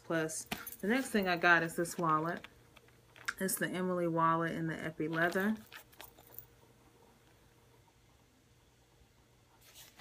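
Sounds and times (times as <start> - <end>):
soft wallet handling sounds: 5.2 - 6.5.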